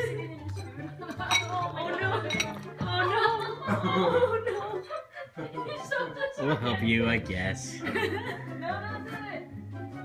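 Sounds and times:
bowls clinking and knocking: 0:00.5 - 0:03.1.

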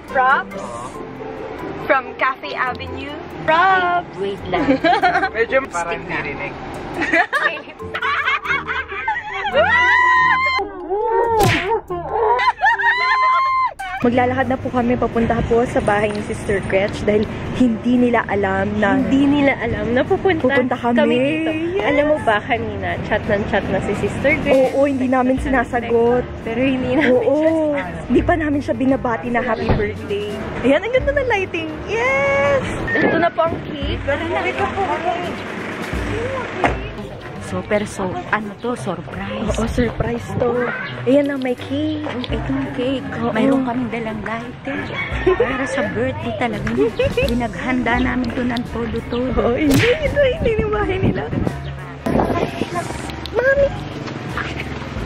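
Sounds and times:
background music: 0:00.0 - 0:55.0
people chattering: 0:00.0 - 0:55.0
women laughing: 0:04.5 - 0:05.5, 0:07.0 - 0:14.1, 0:26.8 - 0:27.9, 0:44.7 - 0:46.0
vehicle engine rumbling: 0:13.8 - 0:55.0.

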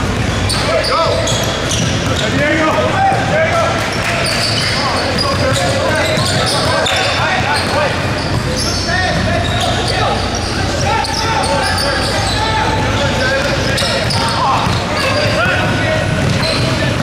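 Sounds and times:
sneakers squeaking: 0:00.0 - 0:17.0
voices echoing: 0:00.0 - 0:17.0
basketball bouncing on wooden floor: 0:13.4 - 0:16.7.

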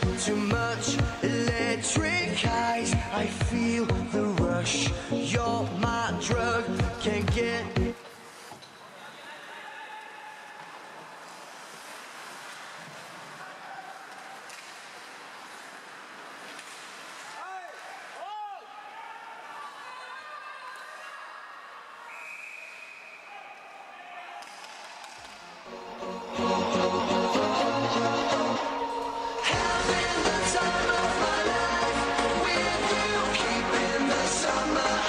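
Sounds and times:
loud pop music: 0:00.0 - 0:08.0, 0:25.8 - 0:35.0
skates and sticks on ice: 0:10.5 - 0:18.4.

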